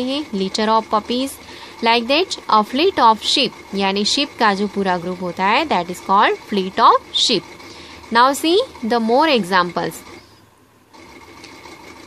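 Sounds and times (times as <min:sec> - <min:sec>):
machine hum with high whine: 0:00.0 - 0:12.0.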